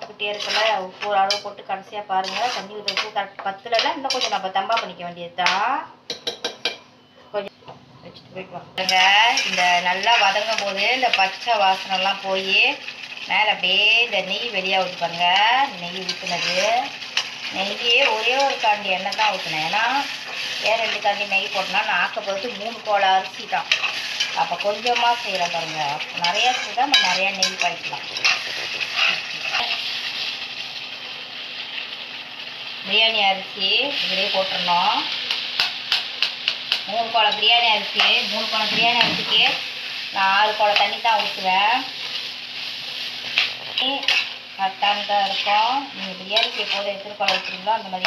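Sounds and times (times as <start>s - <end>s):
curry simmering and sizzling: 0.0s - 3.4s, 8.8s - 33.1s, 33.9s - 48.0s
spatula squealing on pan: 0.3s - 1.4s, 2.2s - 3.0s, 8.8s - 10.6s, 23.5s - 30.2s, 42.1s - 47.7s
metal spatula scraping pan: 0.3s - 1.5s, 2.2s - 3.2s, 3.8s - 4.4s, 8.8s - 12.1s, 16.0s - 22.1s, 23.5s - 30.2s, 43.2s - 48.0s.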